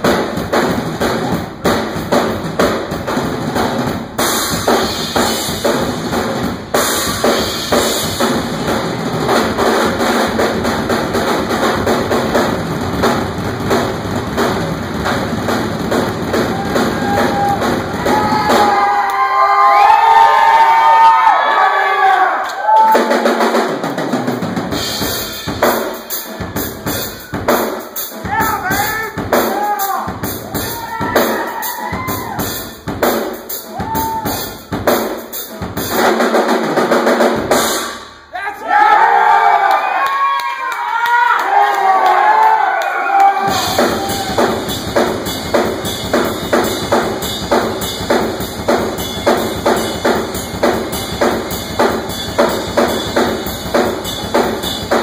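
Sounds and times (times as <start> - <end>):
drum kit solo: 0.0 - 21.4, 22.7 - 38.3, 43.1 - 55.0
audience cheering: 16.2 - 23.4, 28.3 - 32.7, 33.6 - 34.6, 38.3 - 44.8
audience shouting: 16.4 - 23.2, 28.3 - 32.6, 33.7 - 34.5, 38.3 - 44.7.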